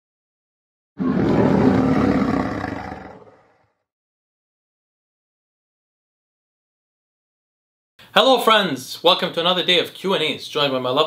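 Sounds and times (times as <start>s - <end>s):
lion roar: 1.0s - 3.8s.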